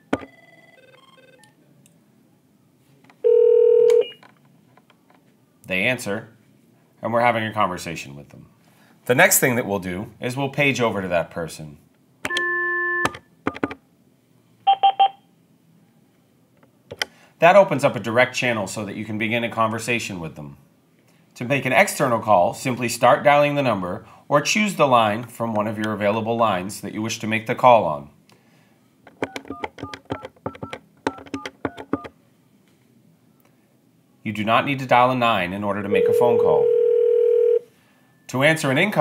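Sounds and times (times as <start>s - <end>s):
steady phone tone: 0.0s - 1.5s, 3.2s - 4.2s, 12.3s - 13.1s, 14.7s - 15.2s, 35.9s - 38.2s
phone keypad touch-tone beeps: 14.7s - 15.2s.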